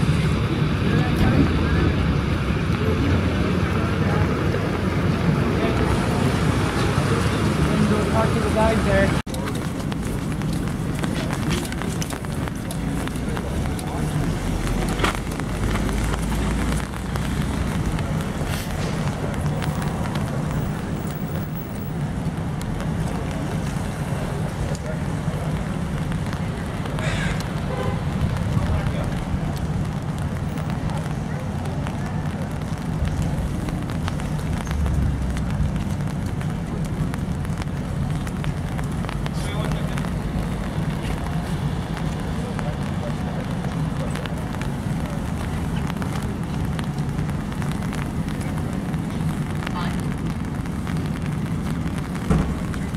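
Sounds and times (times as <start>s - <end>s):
murmur of voices: 0.0s - 22.0s, 35.3s - 52.9s
steady low rumble: 0.0s - 52.9s
rain hiss: 3.5s - 52.9s.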